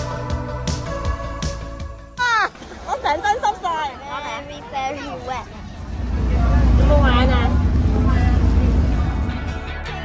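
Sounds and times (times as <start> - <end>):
child's voice: 4.0 - 5.7
loud deep rumble: 5.5 - 9.7.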